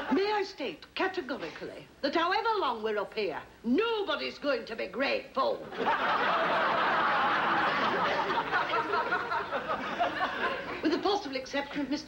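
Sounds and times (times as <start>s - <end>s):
studio audience laughing: 5.7s - 10.9s.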